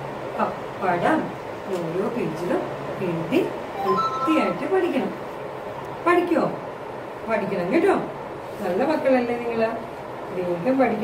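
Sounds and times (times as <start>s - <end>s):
woman speaking in sing-song way: 0.4s - 5.2s.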